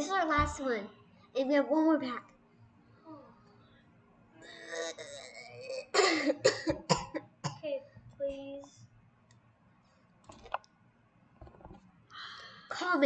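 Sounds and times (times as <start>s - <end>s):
child's cough-like bursts: 4.7s - 7.7s.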